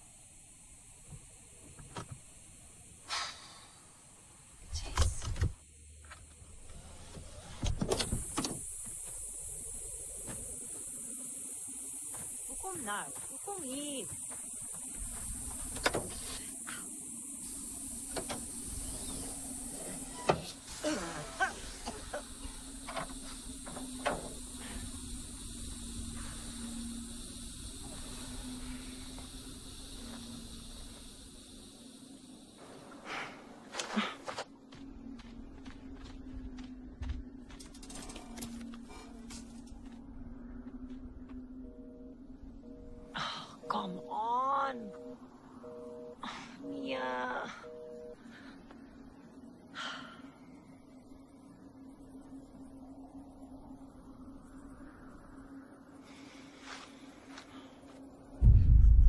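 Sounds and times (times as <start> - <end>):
hiss: 2.2 - 4.9, 7.9 - 34.2
footsteps on gravel: 34.2 - 40.0
low music drone: 34.6 - 59.0.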